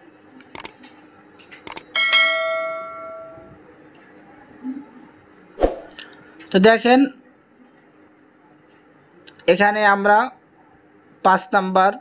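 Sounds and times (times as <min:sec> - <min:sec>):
mouse clicks: 0:00.5 - 0:00.7
bright bell ding: 0:02.0 - 0:03.5.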